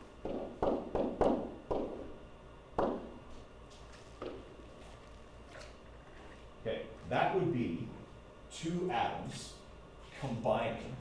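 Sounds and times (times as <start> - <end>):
stylus knocking and rubbing on screen: 4.1 - 5.0.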